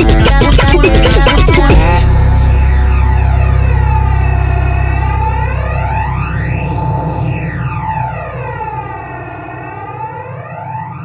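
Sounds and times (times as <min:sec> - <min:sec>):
low bass: 0:00.0 - 0:09.9
steady high tone: 0:00.0 - 0:10.7
siren-like synthesizer sweep: 0:00.0 - 0:11.0.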